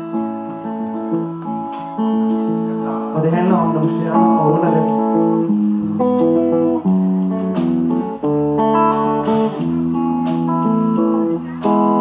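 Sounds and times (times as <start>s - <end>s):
live band playing slow song: 0.0s - 12.0s.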